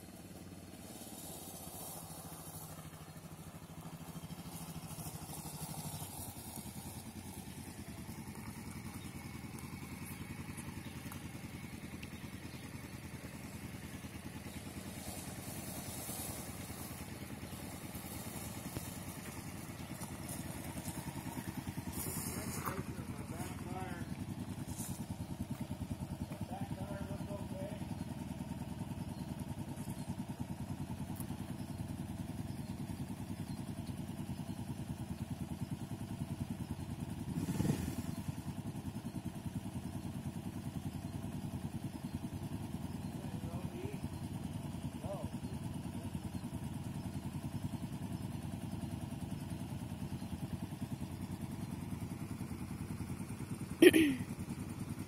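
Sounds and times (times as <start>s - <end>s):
motorcycle engines idling: 0.0s - 55.0s.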